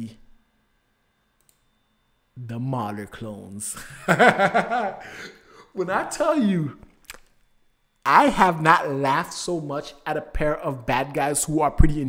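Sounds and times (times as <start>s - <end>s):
man's voice: 5.6s - 6.8s, 8.1s - 12.0s.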